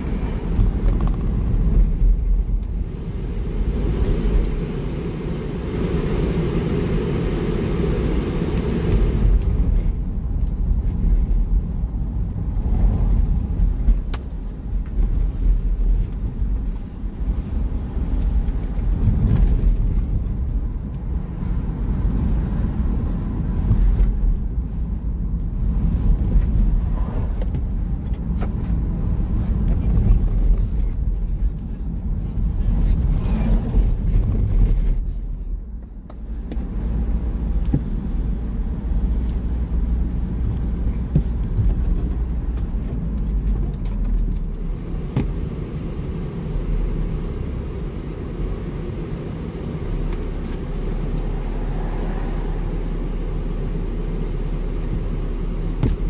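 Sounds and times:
tyre and engine rumble: 0.0s - 56.0s
road hiss: 2.7s - 10.0s, 44.6s - 56.0s.

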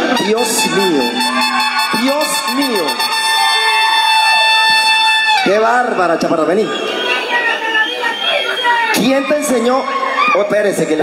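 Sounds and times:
high-pitched electronic horn tone: 0.0s - 5.5s.

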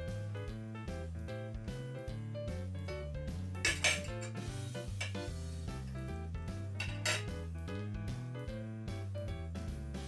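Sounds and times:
background music: 0.0s - 10.0s
cutlery clinking on a plate: 3.6s - 4.4s, 5.0s - 5.3s, 6.8s - 7.3s.

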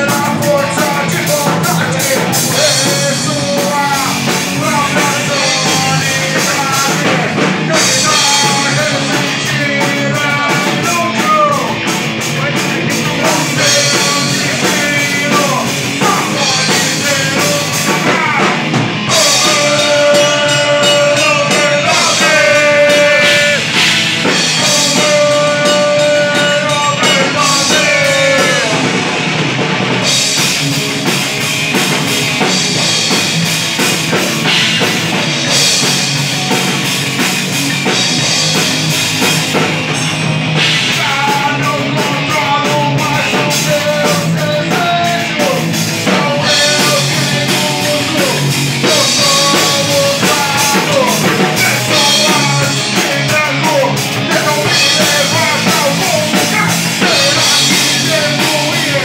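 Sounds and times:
person singing: 0.0s - 29.1s, 40.6s - 59.0s
heavy metal band playing: 0.0s - 59.0s.

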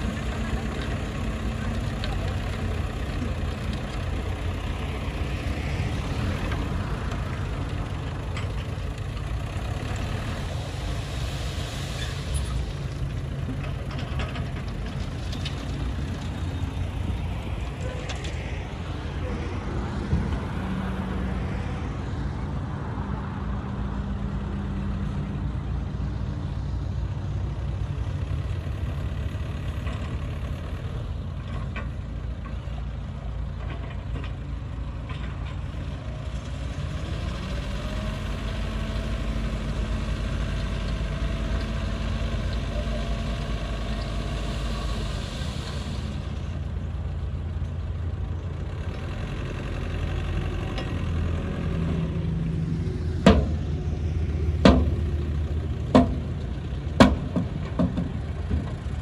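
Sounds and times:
diesel engine running: 0.0s - 59.0s.

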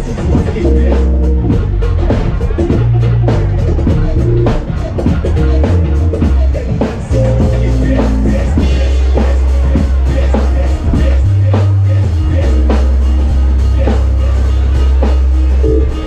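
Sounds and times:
deep bass line: 0.0s - 16.0s
drum kit beat: 0.0s - 16.0s
keyboards: 0.0s - 16.0s.

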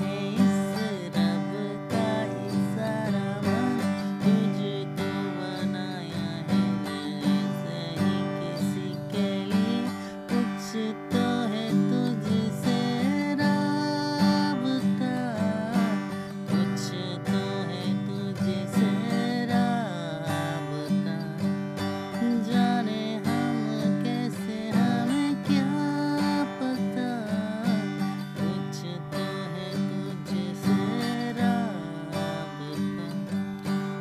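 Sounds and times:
acoustic guitar strumming: 0.0s - 34.0s
man singing: 0.0s - 34.0s.

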